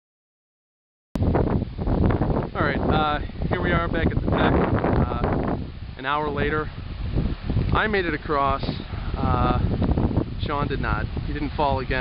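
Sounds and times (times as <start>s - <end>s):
wind buffeting microphone: 1.2s - 12.0s.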